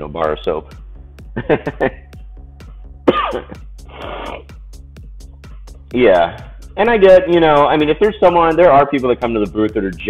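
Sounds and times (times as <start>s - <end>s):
music with ticking beat: 0.0s - 10.0s.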